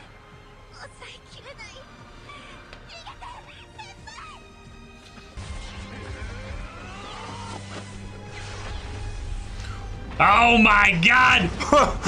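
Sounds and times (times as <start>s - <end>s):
film soundtrack music: 0.0s - 12.0s.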